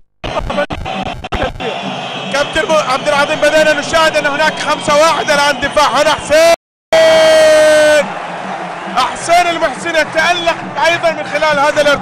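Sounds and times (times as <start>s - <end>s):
arena crowd noise: 0.2s - 12.0s.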